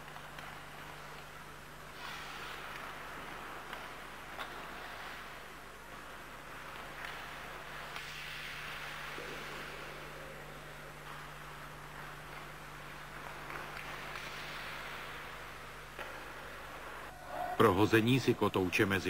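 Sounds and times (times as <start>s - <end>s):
steady low hum: 0.0s - 19.0s
ice skates scraping on ice: 1.9s - 10.0s.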